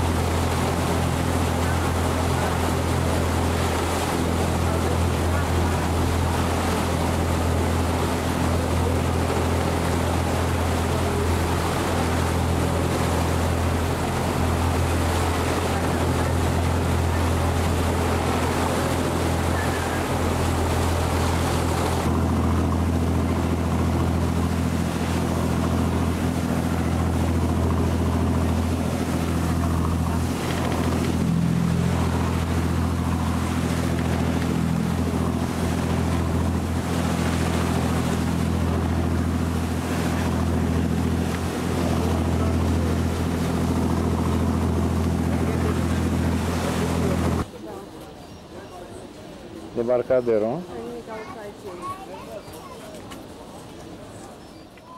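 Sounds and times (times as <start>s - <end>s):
boat engine droning: 0.0s - 54.9s
choppy water wash: 0.0s - 54.9s
wind: 0.0s - 54.9s.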